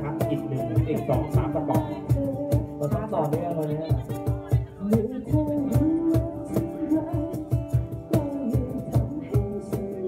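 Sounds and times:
percussion steady beat: 0:00.0 - 0:10.0
person singing: 0:00.0 - 0:10.0
strummed acoustic guitar: 0:00.0 - 0:10.0.

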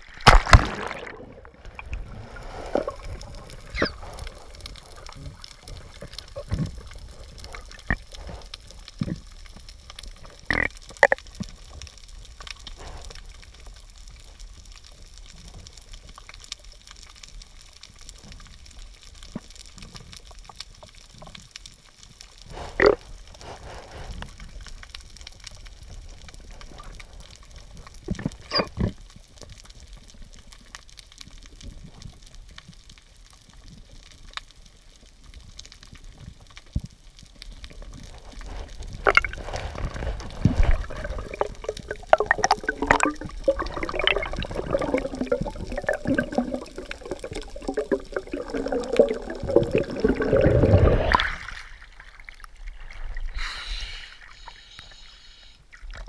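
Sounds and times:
low underwater rumble: 0:36.1 - 0:53.3
regulator bubbles gurgling: 0:38.1 - 0:51.6.

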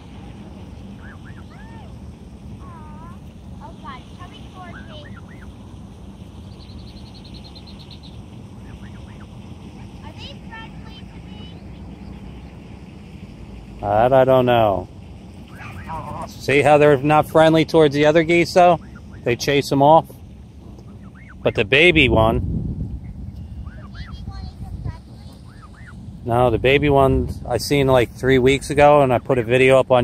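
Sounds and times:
geese calling softly: 0:00.0 - 0:02.0, 0:02.6 - 0:13.7, 0:15.4 - 0:21.9, 0:23.0 - 0:24.3, 0:25.2 - 0:26.2
steady low rumble: 0:00.0 - 0:30.0.

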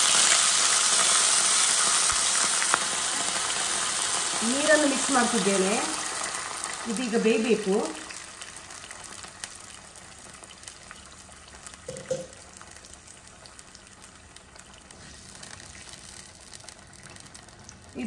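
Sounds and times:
faint sizzle from pan: 0:00.0 - 0:18.0.

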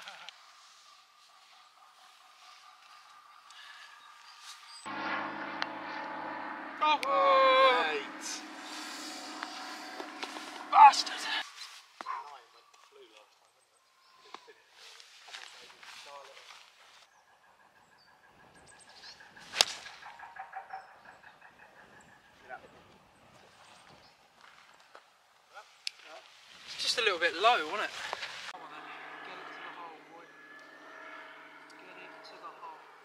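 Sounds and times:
faint outdoor sounds: 0:00.0 - 0:33.0.

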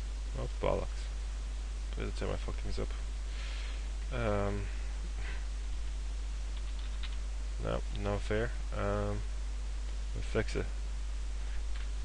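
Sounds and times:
faint keyboard typing: 0:06.5 - 0:07.2.

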